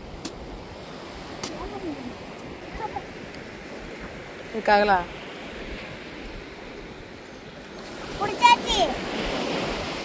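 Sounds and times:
sea surf: 0.0 - 10.0
wind noise on microphone: 0.0 - 10.0.

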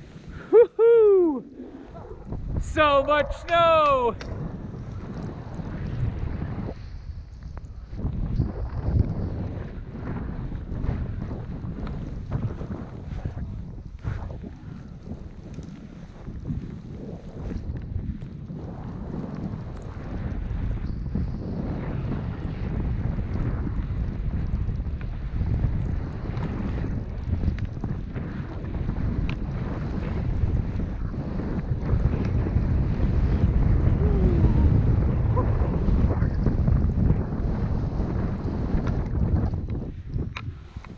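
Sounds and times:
wind buffeting microphone: 0.0 - 40.9.

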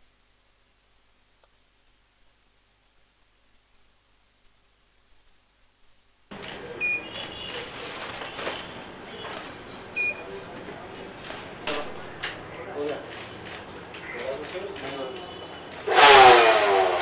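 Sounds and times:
short high electronic beeps: 6.8 - 7.5
sharp clicks: 11.2 - 15.9.

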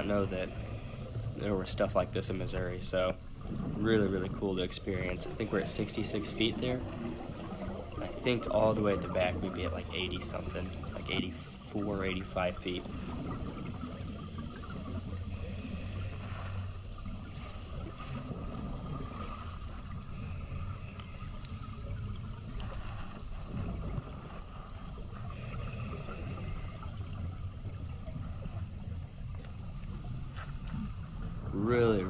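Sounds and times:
underwater rush of water: 0.0 - 32.0.

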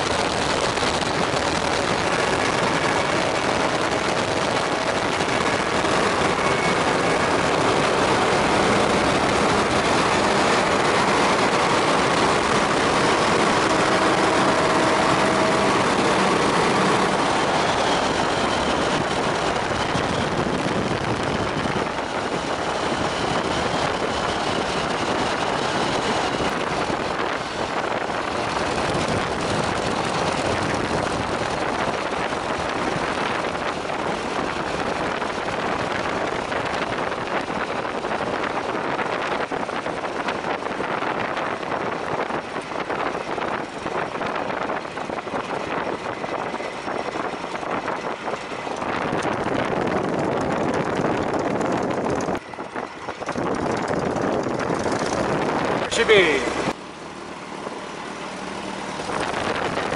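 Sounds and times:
biplane engine and propeller: 0.0 - 59.9
wind rush on microphone: 0.0 - 59.9.

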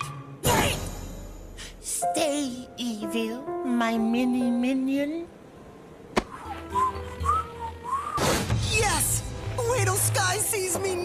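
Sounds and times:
background music: 0.0 - 11.0
cartoon whistling: 6.3 - 8.4.

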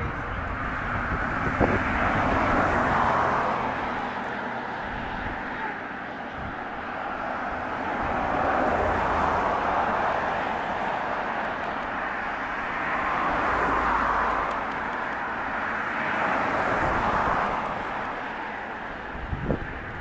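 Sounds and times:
distant vehicles rushing hum: 0.0 - 20.0.

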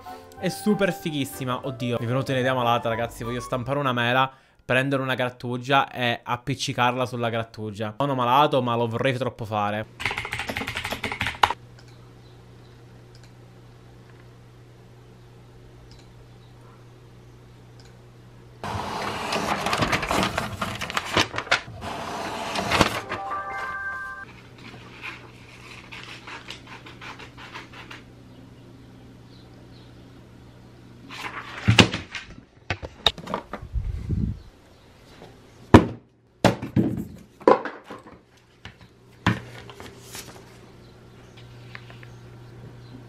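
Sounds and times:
typing on computer keyboard: 10.0 - 11.6
sharp clicks: 15.9 - 16.1
paper rustling: 19.0 - 21.7, 22.5 - 28.0, 31.1 - 32.3, 39.3 - 40.7.

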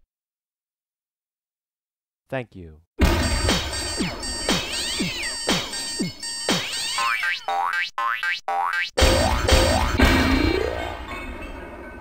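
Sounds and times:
electronic music with boing sweeps: 3.0 - 11.0.

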